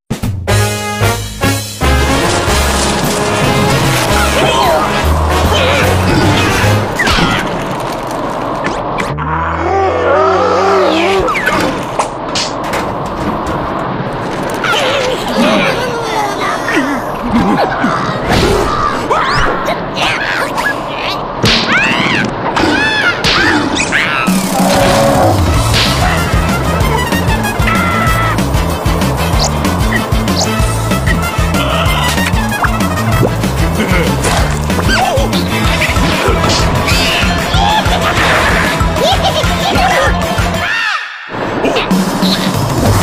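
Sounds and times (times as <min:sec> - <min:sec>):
slapstick crash and whack effects: 0:25.6 - 0:26.2.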